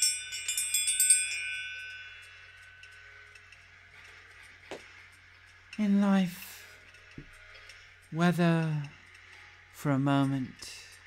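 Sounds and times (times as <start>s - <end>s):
bell chiming: 0.0s - 3.5s.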